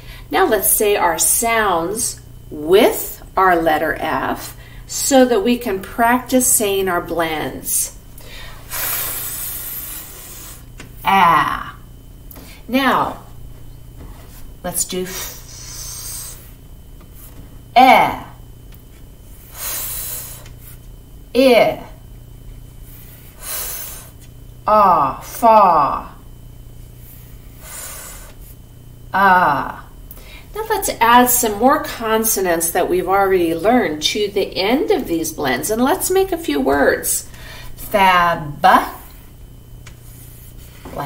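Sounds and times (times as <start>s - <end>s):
woman making f hiss: 8.7s - 10.7s, 15.1s - 16.4s, 19.5s - 20.5s.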